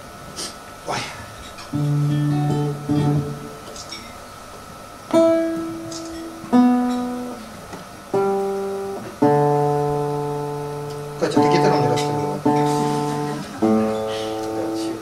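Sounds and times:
acoustic guitar chords ringing: 1.7 - 4.1, 5.0 - 15.0.

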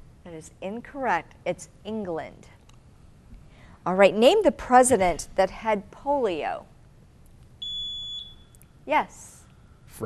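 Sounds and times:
buzzer beep: 7.6 - 8.5.

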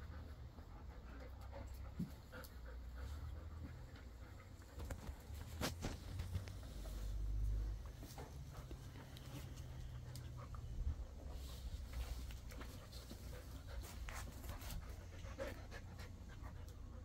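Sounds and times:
dog panting: 0.0 - 17.0
small clicks and scuffs: 1.2 - 10.7, 11.3 - 15.6.

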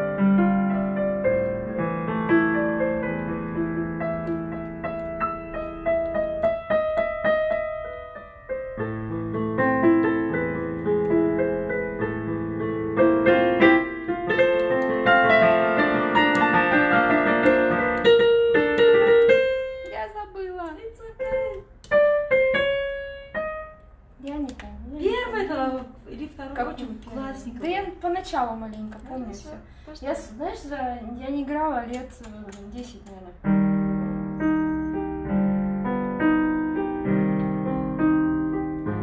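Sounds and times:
digital piano playing: 0.0 - 24.1, 33.4 - 39.0.

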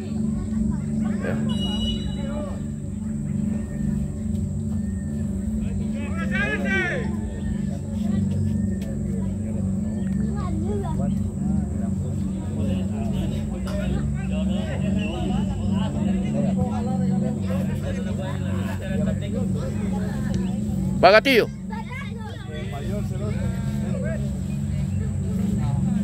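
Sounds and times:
distant shouts and voices: 0.0 - 26.0
steady low hum: 0.0 - 26.0.

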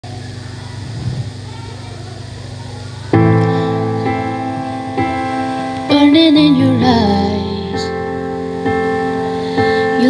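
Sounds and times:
sustained ringing chord: 3.2 - 10.0.

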